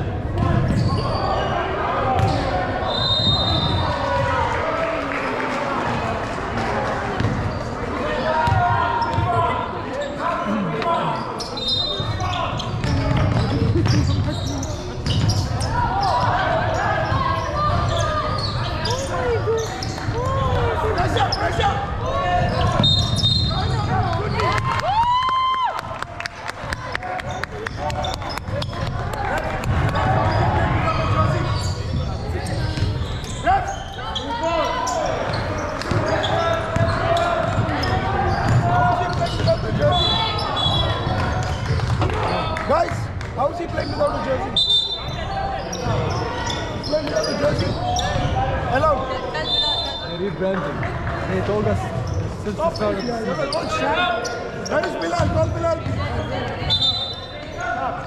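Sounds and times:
sneakers squeaking: 0:00.3 - 0:04.4, 0:07.1 - 0:24.7, 0:27.0 - 0:42.6, 0:43.4 - 0:58.0
basketball bouncing on wooden court: 0:07.2 - 0:07.4, 0:08.4 - 0:09.4, 0:12.6 - 0:15.5, 0:35.3 - 0:42.2.

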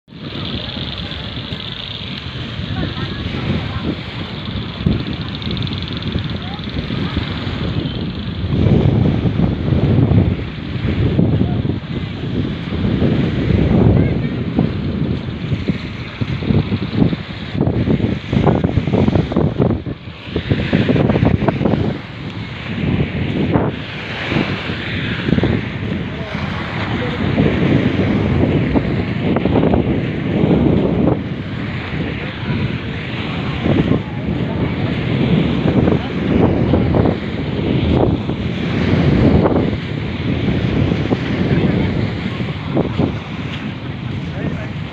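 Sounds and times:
wind buffeting microphone: 0:00.0 - 0:44.9
indistinct voices: 0:00.1 - 0:08.9
surf washing on beach: 0:00.1 - 0:44.9.

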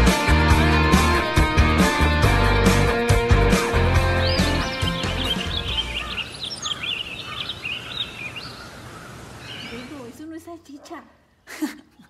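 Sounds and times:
background music: 0:00.0 - 0:06.2
small birds chirping: 0:04.0 - 0:12.0.

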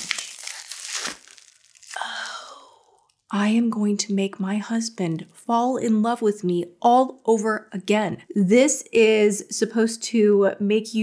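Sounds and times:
bubble wrap crinkling: 0:00.0 - 0:02.1.

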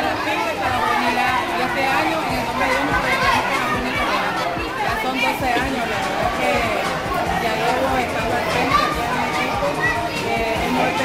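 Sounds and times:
woman talking: 0:00.0 - 0:09.4
background music: 0:00.0 - 0:11.0
crowd chatter: 0:00.0 - 0:11.0.

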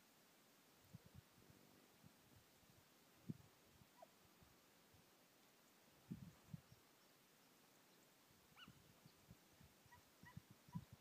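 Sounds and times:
distant hounds yelping: 0:08.5 - 0:08.8, 0:09.8 - 0:11.0.

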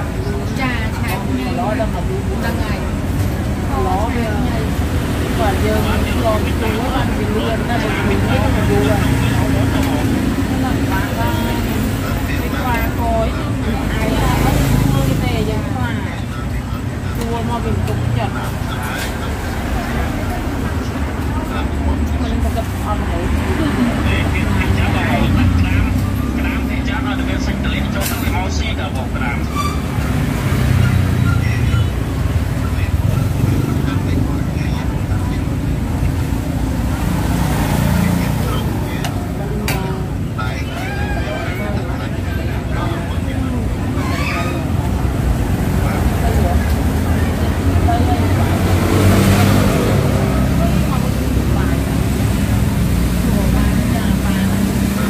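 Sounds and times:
people talking: 0:00.0 - 0:55.0
road traffic rumble: 0:00.0 - 0:55.0.

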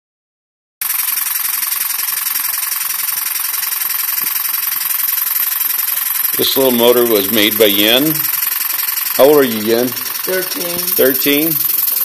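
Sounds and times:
fast even exhaust chuffing: 0:00.8 - 0:12.0
steam engine running on air: 0:00.8 - 0:12.0.

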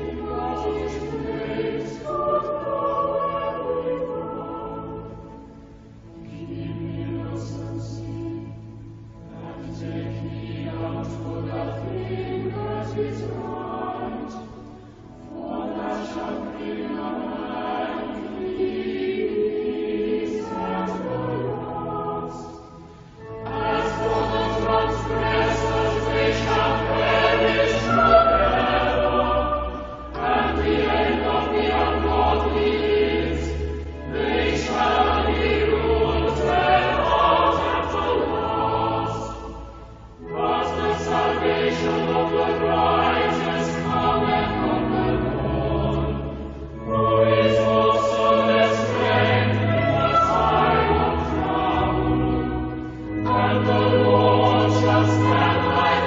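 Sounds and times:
church choir singing: 0:00.0 - 0:56.0.

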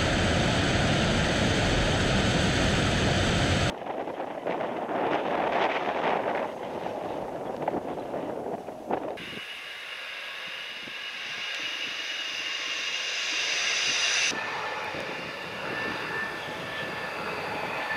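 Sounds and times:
jet engines whining and roaring: 0:00.0 - 0:07.8, 0:08.9 - 0:17.9.

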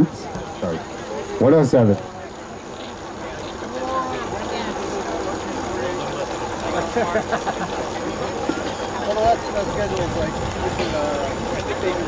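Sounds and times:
people talking in background: 0:00.0 - 0:12.0
steady outdoor hiss: 0:00.0 - 0:12.0.

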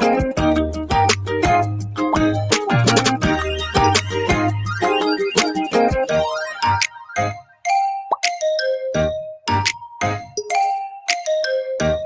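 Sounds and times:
bouncy quiz-game music: 0:02.0 - 0:12.0.

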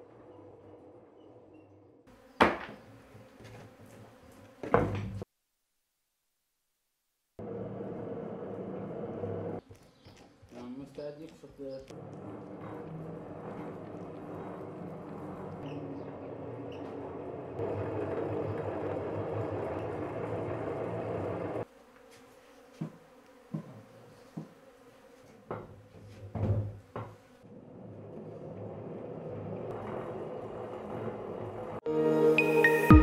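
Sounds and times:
buzzing hum: 0:00.0 - 0:10.6, 0:11.8 - 0:33.0.

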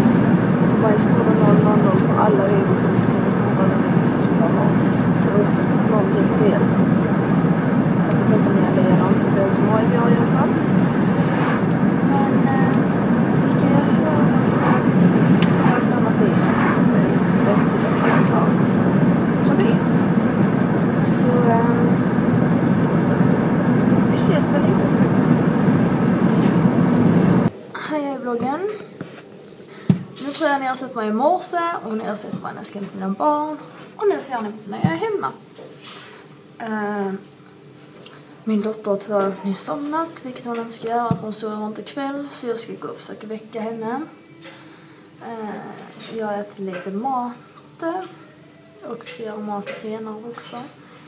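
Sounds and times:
woman's voice: 0:00.0 - 0:20.1, 0:20.9 - 0:22.4, 0:24.0 - 0:27.0, 0:27.8 - 0:28.9, 0:29.9 - 0:35.4, 0:36.6 - 0:37.3, 0:38.4 - 0:44.2, 0:45.2 - 0:48.2, 0:48.8 - 0:50.8
car road and engine noise: 0:00.0 - 0:27.5.

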